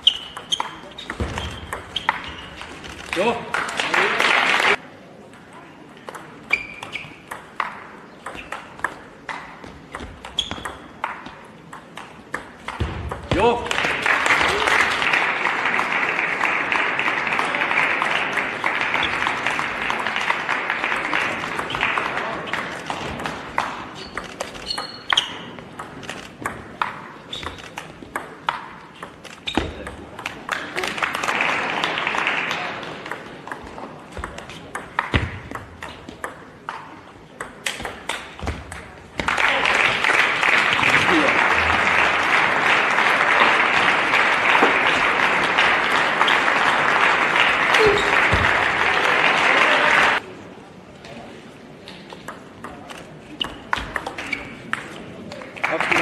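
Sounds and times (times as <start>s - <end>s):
audience applause: 3.1s - 4.8s, 13.7s - 22.6s, 30.5s - 33.0s, 39.2s - 50.2s, 55.6s - 56.0s.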